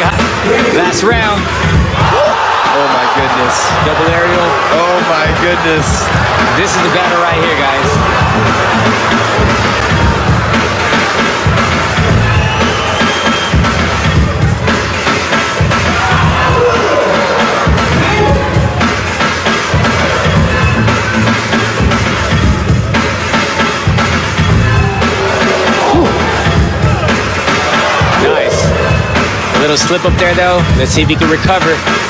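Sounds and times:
crowd cheering: 0.0 - 31.7
hip-hop music with heavy beat: 0.0 - 32.0.

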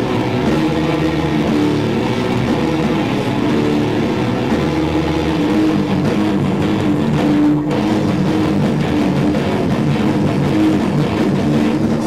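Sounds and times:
distorted electric guitars droning: 0.0 - 12.0.

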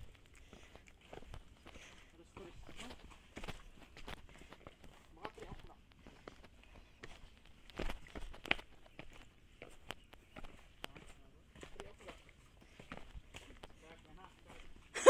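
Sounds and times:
footsteps running on dirt trail: 0.0 - 15.0.

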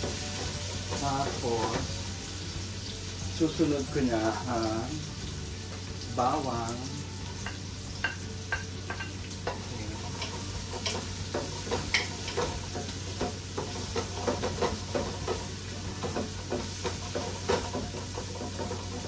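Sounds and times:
onions sizzling in oil: 0.0 - 19.0.

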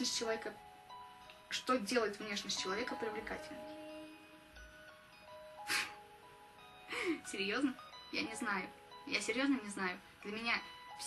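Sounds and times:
soft chiming background music: 0.0 - 11.0
person breathy vocal sound: 5.7 - 6.0.

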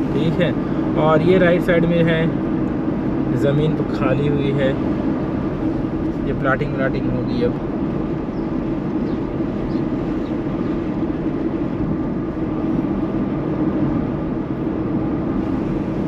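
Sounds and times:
car road and engine rumble: 0.0 - 16.0.

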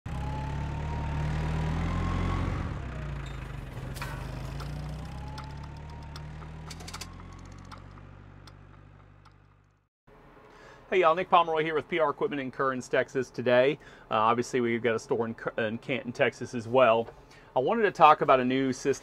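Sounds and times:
engine running: 0.1 - 10.4
sharp clicks: 4.6 - 9.7.

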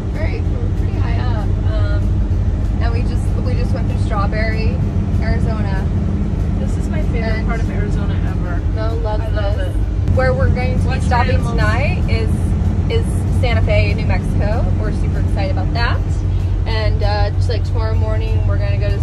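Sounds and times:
indistinct voices: 0.0 - 19.0
road and engine rumble: 0.0 - 19.0.

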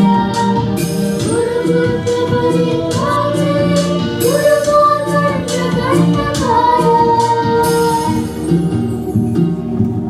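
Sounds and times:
girls singing together: 0.0 - 8.2.

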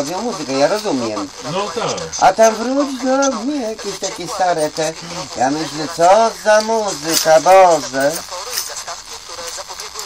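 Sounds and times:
conversation: 0.0 - 10.0
indistinct talking: 0.0 - 10.0.

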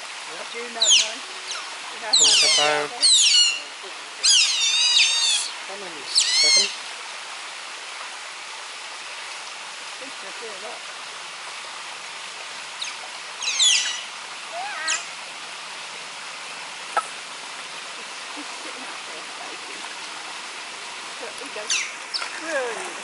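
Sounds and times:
stream water running: 0.0 - 23.0
high bird chirps: 0.8 - 3.6, 4.2 - 5.5, 6.1 - 6.8, 12.8 - 14.1.

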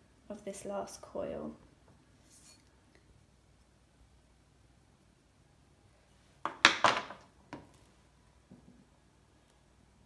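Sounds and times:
tools knocking on wooden table: 6.4 - 7.7.

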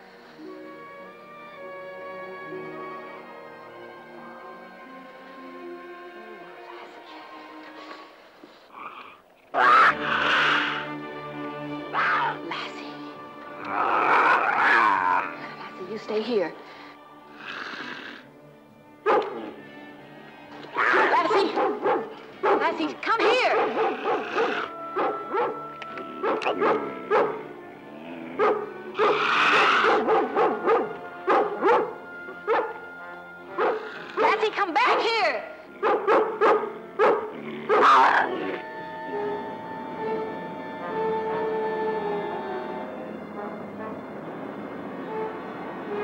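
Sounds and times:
dramatic orchestral music: 0.1 - 8.4, 9.6 - 46.0
cougar snarling: 8.7 - 11.0, 13.5 - 15.6, 17.4 - 18.3, 20.8 - 30.7, 33.6 - 34.4, 35.7 - 38.6
dog barking: 19.1 - 19.5, 20.8 - 25.6, 26.2 - 27.4, 28.4 - 32.8, 33.6 - 34.4, 35.8 - 38.4.

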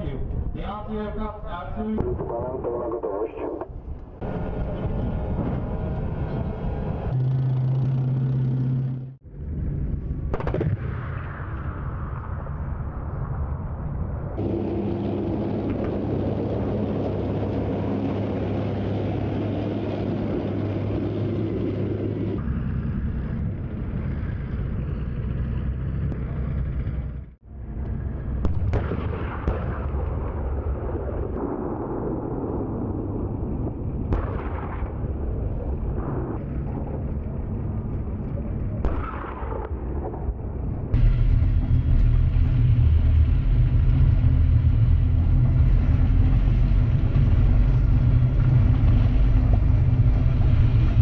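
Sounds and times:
tank engines humming: 0.0 - 11.6, 14.3 - 32.4, 33.8 - 51.0.

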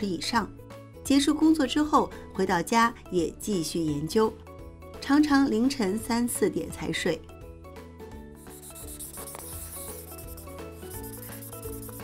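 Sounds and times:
background music with sustained tones: 0.0 - 12.0
hand rubbing lacquered piece: 8.5 - 12.0.

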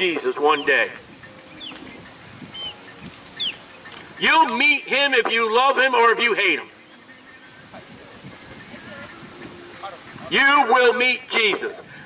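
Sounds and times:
outdoor ambience hiss: 0.0 - 12.0
faint bird chirps: 0.5 - 4.2.

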